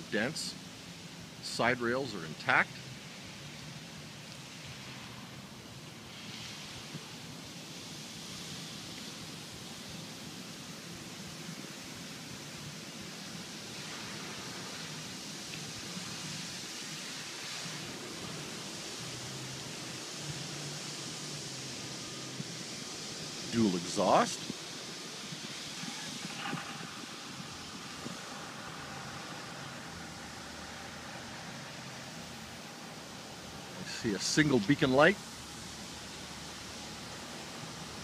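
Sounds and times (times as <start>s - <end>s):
outdoor background hiss: 0.0s - 38.0s.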